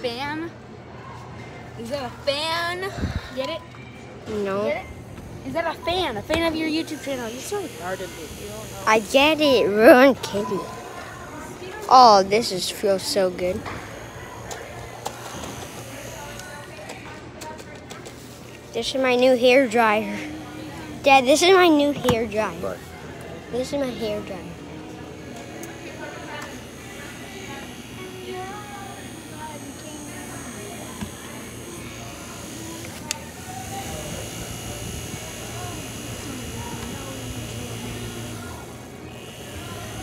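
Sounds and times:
faint voices: 0:00.0 - 0:40.0
small fan buzzing whir: 0:01.7 - 0:40.0.

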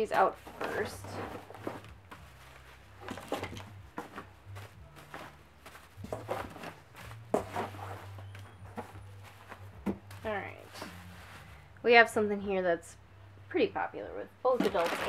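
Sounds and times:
low steady hum: 0:00.0 - 0:15.0
plastic packaging crinkling: 0:14.5 - 0:15.0.

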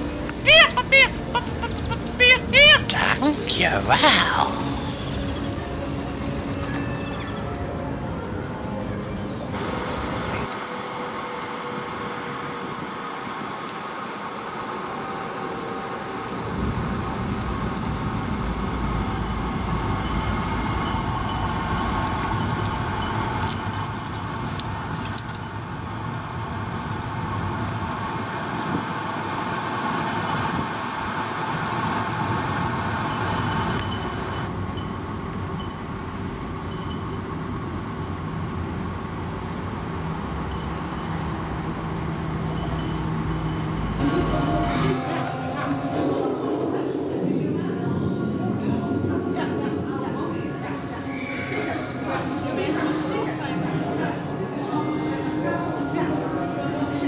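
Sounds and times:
vacuum waste bin rushing hum: 0:09.5 - 0:46.1.

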